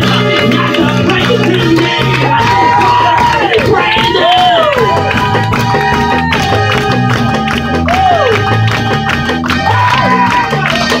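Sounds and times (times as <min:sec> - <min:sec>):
bass line: 0:00.0 - 0:11.0
crowd noise: 0:00.0 - 0:11.0
sliding lead melody: 0:00.0 - 0:11.0
worship band playing loud music: 0:00.0 - 0:11.0.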